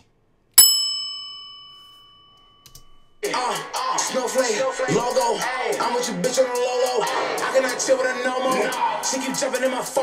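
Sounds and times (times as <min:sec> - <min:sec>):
bright bell-like ding: 0:00.6 - 0:03.0.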